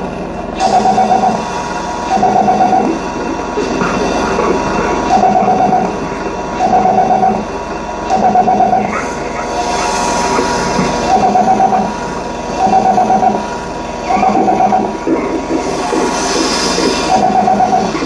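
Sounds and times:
steady electronic drone: 0.0 - 18.0.

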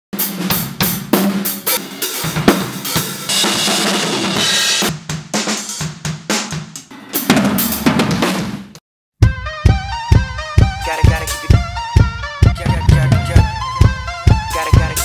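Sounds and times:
drum kit played hard: 0.1 - 15.0.

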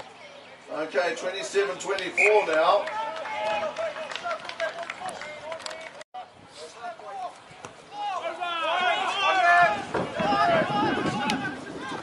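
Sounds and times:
voices shouting and calling: 0.0 - 12.0.

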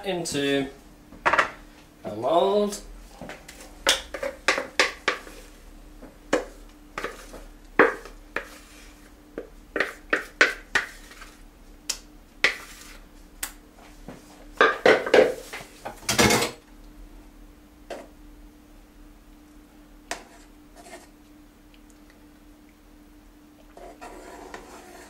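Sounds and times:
utensil scraping a mixing bowl: 6.4 - 9.2, 9.8 - 11.4, 12.4 - 13.0, 20.1 - 21.1, 23.8 - 25.0.

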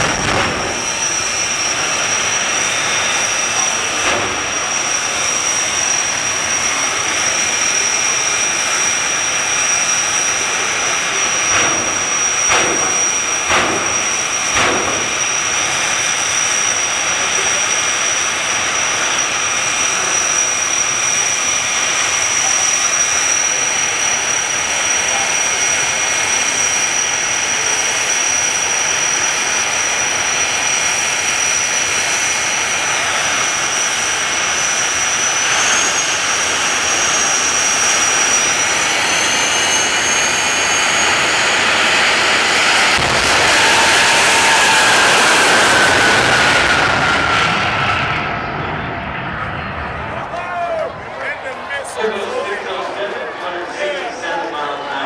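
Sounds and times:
jet engines whining: 0.0 - 55.0.

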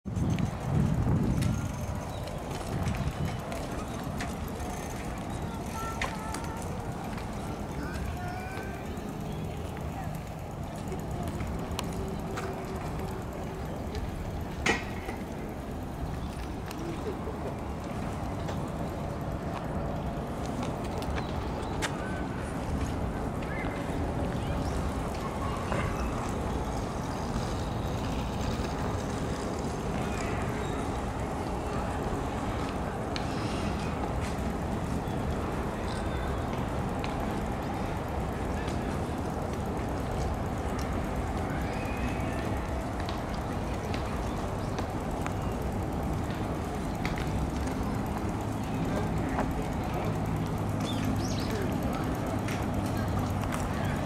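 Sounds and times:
faint voices of passers-by: 0.1 - 54.0.

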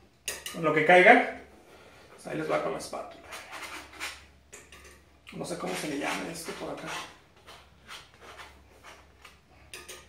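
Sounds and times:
palette knife scraping paint: 3.1 - 4.3, 5.4 - 9.4.

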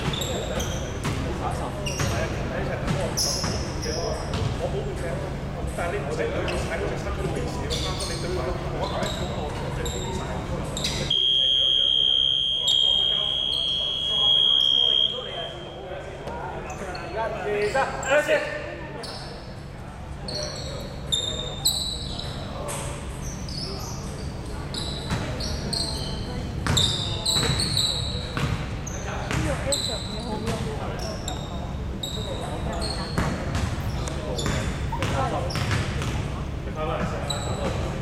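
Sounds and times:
shoes squeaking on court floor: 0.0 - 4.8, 5.6 - 18.3, 19.0 - 19.6, 20.2 - 38.0
murmur of voices: 0.0 - 38.0
basketball bouncing: 4.3 - 4.6, 26.6 - 27.6, 28.4 - 28.6, 29.3 - 29.6, 33.2 - 33.8, 34.4 - 36.2.

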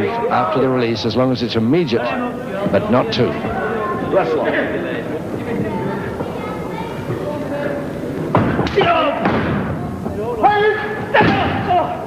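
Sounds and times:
people shouting: 2.0 - 12.0.

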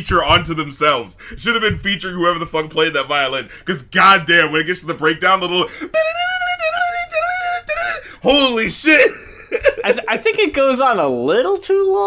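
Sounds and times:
man singing in falsetto: 5.7 - 8.3.

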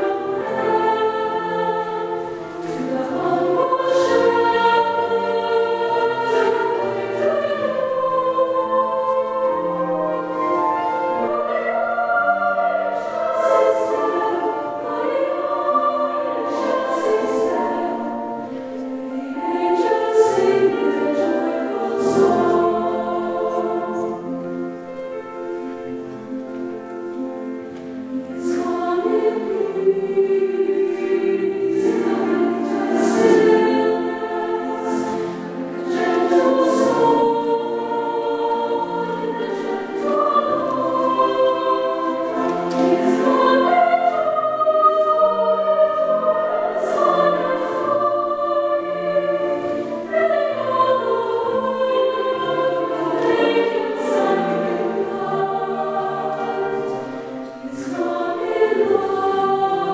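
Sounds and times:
choir singing in a church: 0.0 - 59.9.

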